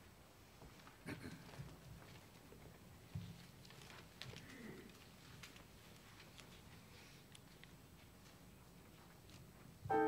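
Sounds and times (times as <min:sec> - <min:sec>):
faint clicks and rustles: 0:00.5 - 0:09.8.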